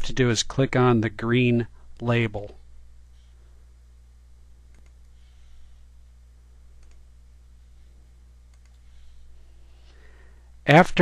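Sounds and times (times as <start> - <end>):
low electrical hum: 0.0 - 11.0
computer key and mouse clicks: 4.7 - 5.1, 6.8 - 7.0, 8.5 - 8.8.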